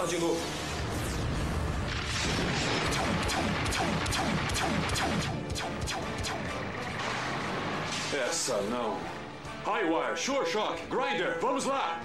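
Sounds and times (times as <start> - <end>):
action music: 0.6 - 12.0
cartoon blasts and explosions: 0.8 - 8.3.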